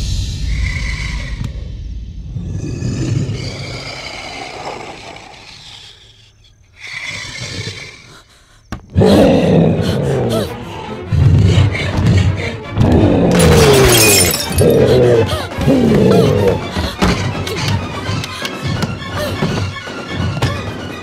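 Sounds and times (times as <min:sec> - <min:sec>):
monster roar: 0:02.4 - 0:06.2.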